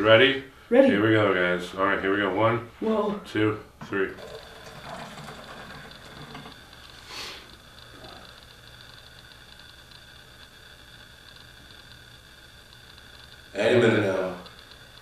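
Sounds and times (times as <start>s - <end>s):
faint high whine: 0.0s - 15.0s
low electrical hum: 0.0s - 15.0s
short breathy hiss: 6.9s - 7.6s.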